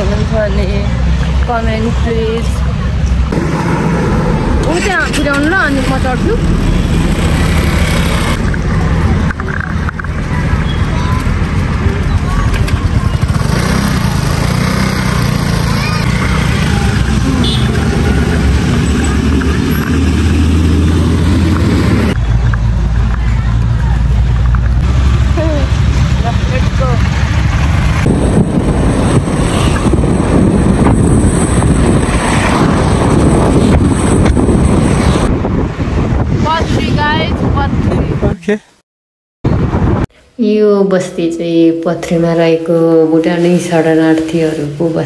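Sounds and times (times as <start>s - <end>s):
motor scooter engine: 3.3s - 10.3s, 11.8s - 22.2s
voices: 4.5s - 6.7s, 8.4s - 19.7s
wind buffeting microphone: 27.4s - 38.5s, 39.5s - 40.1s.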